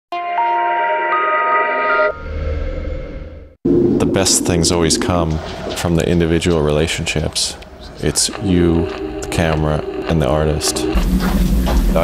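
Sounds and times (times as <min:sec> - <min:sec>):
low rumble with hiss: 0:03.9 - 0:12.0.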